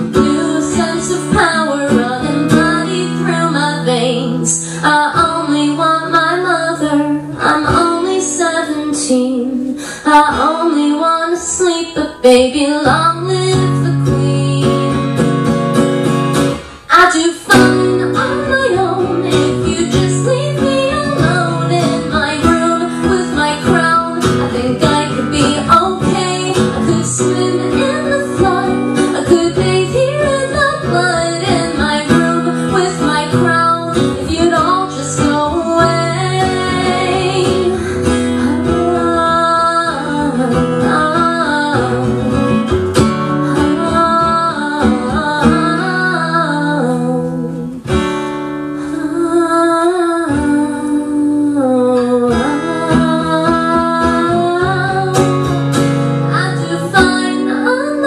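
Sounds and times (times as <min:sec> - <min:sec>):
strummed acoustic guitar: 0:00.0 - 0:58.0
woman singing: 0:00.0 - 0:58.0.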